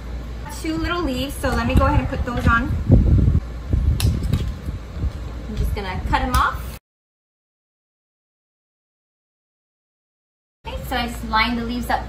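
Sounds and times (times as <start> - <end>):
low rumbling handling noise: 0.0 - 6.7.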